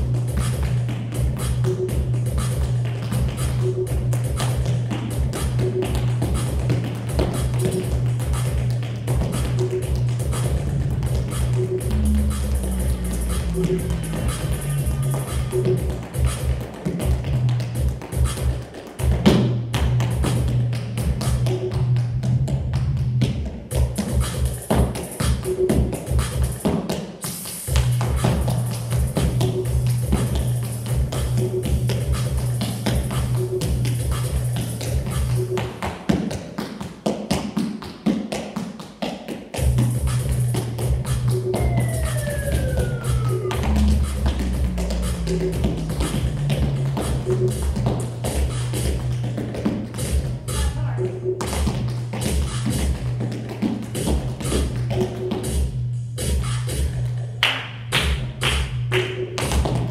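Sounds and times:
backing music with steady beat: 0.0s - 59.9s
tap shoes on hard floor: 0.3s - 12.0s, 15.0s - 25.0s, 25.7s - 27.1s, 34.6s - 39.9s, 40.8s - 50.7s, 51.4s - 55.5s, 59.4s - 59.9s.

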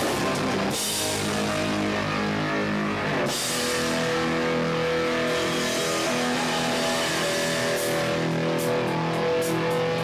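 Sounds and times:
distorted electric guitars and bass: 0.0s - 10.0s.

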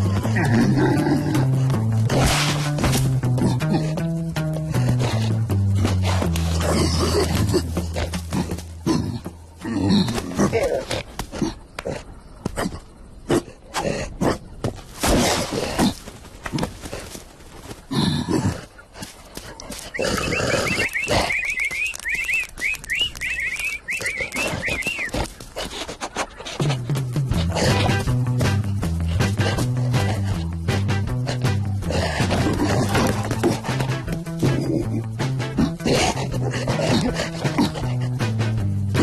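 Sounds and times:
cartoon animal grunts and growls: 0.0s - 14.5s, 17.9s - 18.7s, 26.4s - 39.0s
high chirps: 19.9s - 25.2s.

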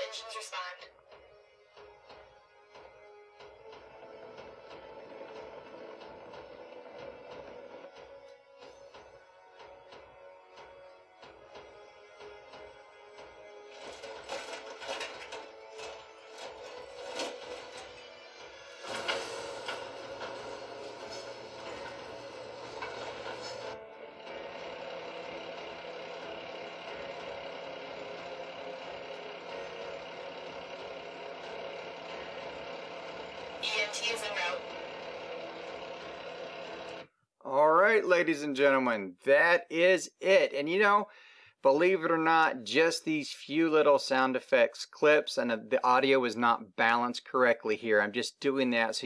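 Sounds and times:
woman speaking over radio: 0.0s - 1.0s, 33.6s - 34.7s
fire truck idling: 0.0s - 37.3s
background music: 0.0s - 47.0s
crashing impacts: 18.6s - 23.8s.

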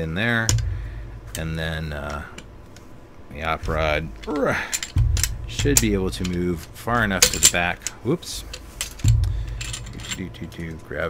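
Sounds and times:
metallic clicks and rattles: 3.7s - 11.0s.

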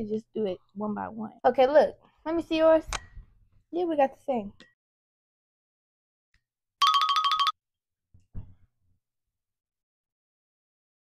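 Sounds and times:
electronic phone ring trill: 6.8s - 7.6s.

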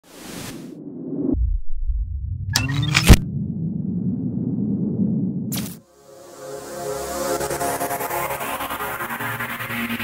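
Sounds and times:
deep rumble: 0.7s - 5.8s
low rumbling drone: 0.8s - 5.5s.

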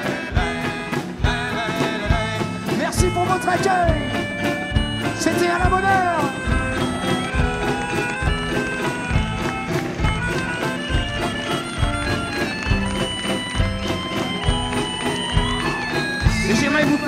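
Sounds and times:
drum kit beat: 0.0s - 17.0s
guitar: 0.0s - 17.0s
melodica melody: 0.0s - 17.0s.

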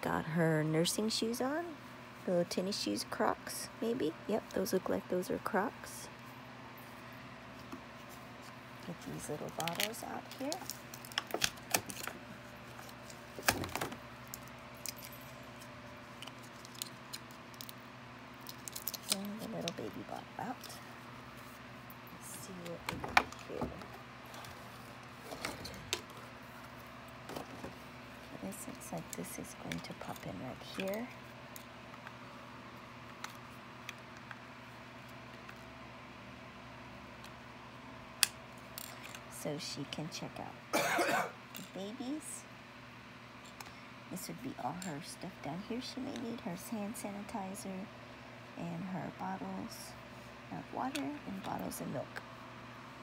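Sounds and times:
low background hum: 0.0s - 53.0s
plastic packaging crinkling: 9.5s - 17.8s, 18.4s - 19.7s.

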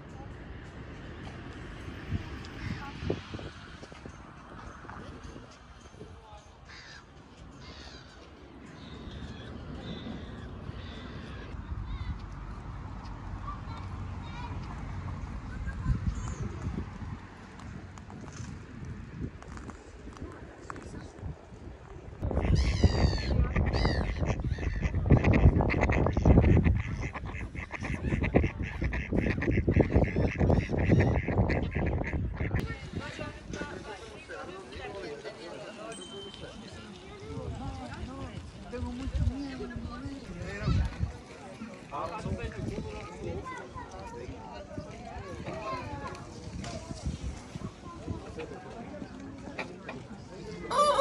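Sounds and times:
ducks quacking: 22.3s - 32.6s
rooster crowing: 50.7s - 51.0s.

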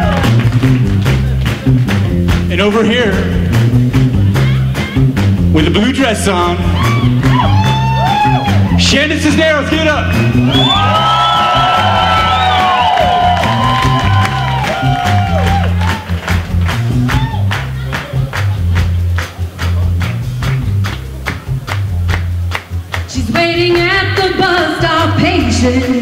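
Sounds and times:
even drum beat: 0.0s - 26.0s
rockabilly band playing: 0.0s - 26.0s
steady bass line: 0.0s - 26.0s
woman singing: 23.1s - 26.0s.

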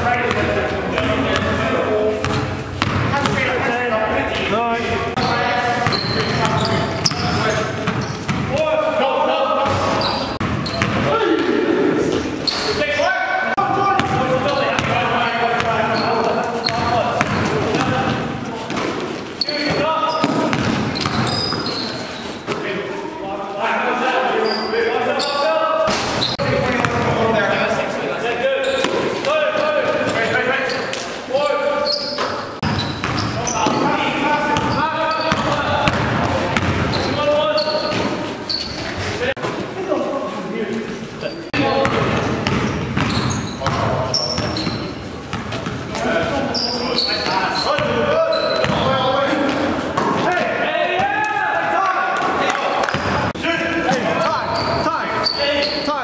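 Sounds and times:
people talking and calling: 0.0s - 56.0s
basketball bouncing on gym floor: 2.2s - 3.5s, 5.2s - 8.6s, 9.6s - 11.1s, 14.0s - 15.9s, 16.6s - 18.9s, 19.6s - 21.7s, 32.6s - 33.9s, 34.5s - 37.2s, 41.6s - 46.0s, 48.6s - 50.3s.

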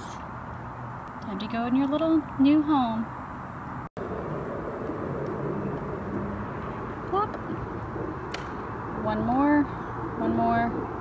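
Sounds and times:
low rush like distant traffic: 0.0s - 11.0s.

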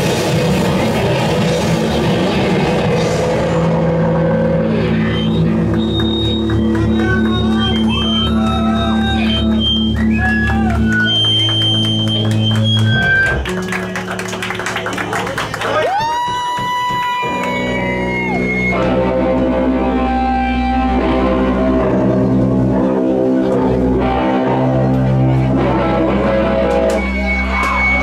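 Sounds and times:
drum kit: 0.0s - 19.6s
bass guitar: 0.0s - 28.0s
distorted electric guitars: 0.0s - 28.0s.

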